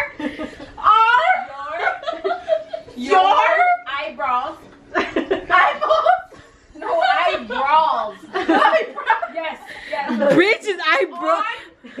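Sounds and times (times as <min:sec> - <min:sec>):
women laughing: 0:00.0 - 0:03.0, 0:08.1 - 0:10.4
unclear talk: 0:05.4 - 0:11.8.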